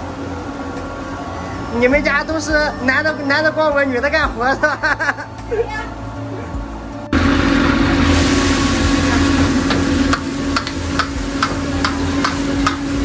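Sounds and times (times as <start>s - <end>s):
gas burner blower roaring: 0.0s - 13.0s.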